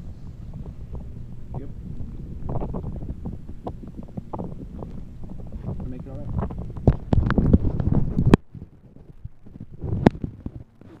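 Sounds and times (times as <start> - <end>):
rumbling on phone microphone: 0.0 - 11.0.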